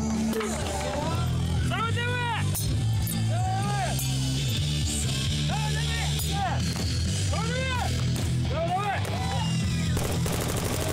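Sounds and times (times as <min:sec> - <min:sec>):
background music with bass line: 0:00.0 - 0:10.7.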